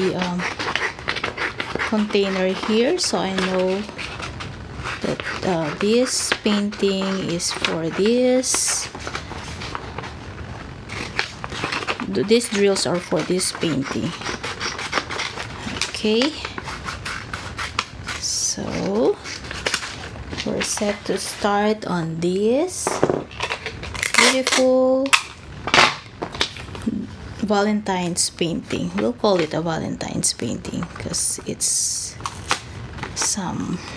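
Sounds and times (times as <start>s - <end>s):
scissors snipping paper: 0.0s - 10.1s, 10.9s - 21.6s, 23.4s - 25.2s
paper rustling: 0.0s - 21.6s.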